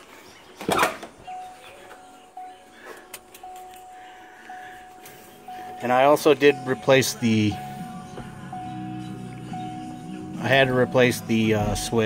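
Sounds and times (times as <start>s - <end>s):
pulsing high warning chime: 1.3s - 12.0s.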